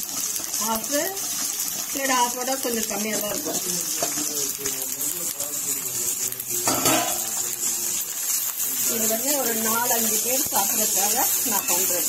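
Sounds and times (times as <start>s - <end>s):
onions sizzling in a pan: 0.0s - 12.0s.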